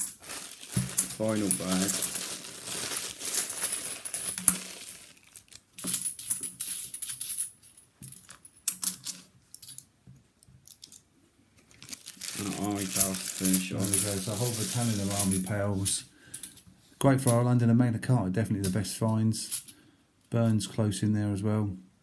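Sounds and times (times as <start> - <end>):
plastic bag crinkling: 0.0 - 5.8, 11.6 - 15.8
man speaking: 1.2 - 2.0, 12.4 - 16.1, 17.0 - 19.6, 20.3 - 21.8.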